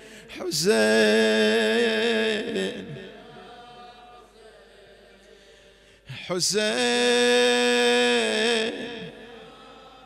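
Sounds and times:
man chanting over loudspeaker: 0:00.0 - 0:04.2, 0:06.0 - 0:10.0.

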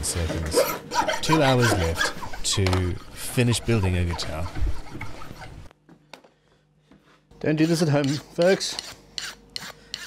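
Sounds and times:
hand file rasping: 0:00.5 - 0:05.7, 0:07.6 - 0:10.0.

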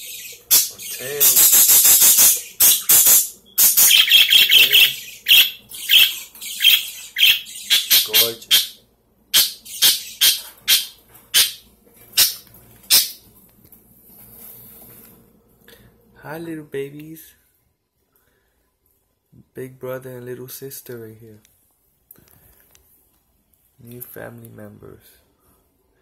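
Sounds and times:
budgerigars chirping and squawking: 0:00.0 - 0:11.6, 0:12.2 - 0:13.2.

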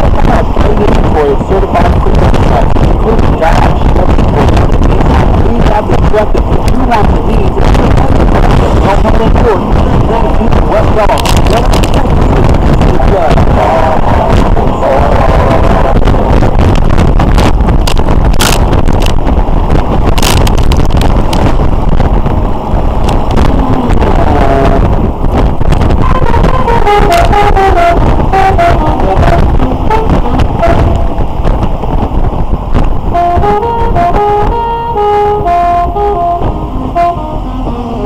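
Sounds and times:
radio melody with horn-like notes: 0:00.0 - 0:38.0
wind rumbling: 0:00.0 - 0:38.0.

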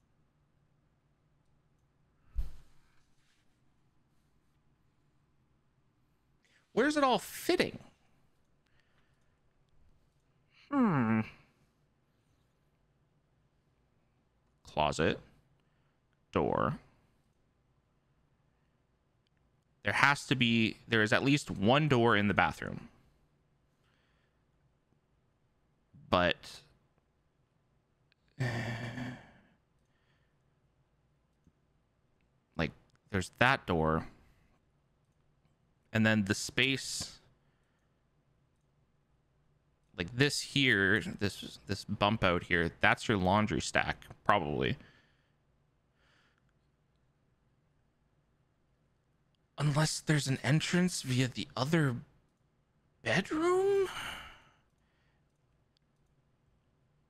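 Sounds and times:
man sighing: 0:10.6 - 0:11.6, 0:28.4 - 0:29.6, 0:53.5 - 0:54.6
faint small clicks: 0:19.2 - 0:19.8, 0:31.2 - 0:31.6, 0:34.5 - 0:35.6, 0:37.0 - 0:38.8, 0:54.6 - 0:56.6.

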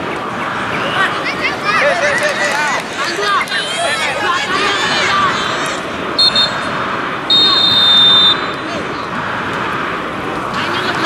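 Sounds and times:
voices of players and onlookers: 0:00.0 - 0:11.0
referee's whistle blasts: 0:06.2 - 0:06.7, 0:07.3 - 0:08.6.

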